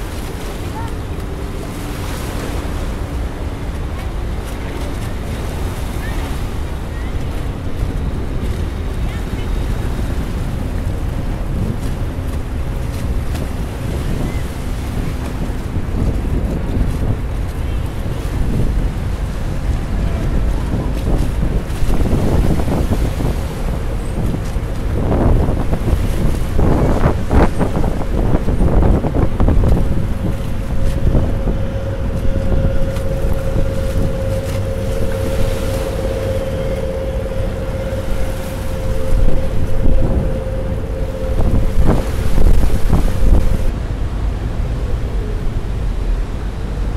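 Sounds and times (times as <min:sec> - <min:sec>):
ferry engines running: 0:00.0 - 0:46.9
water slapping against pier: 0:00.0 - 0:46.9
wind buffeting microphone: 0:00.0 - 0:46.9
steady hum: 0:17.6 - 0:46.9.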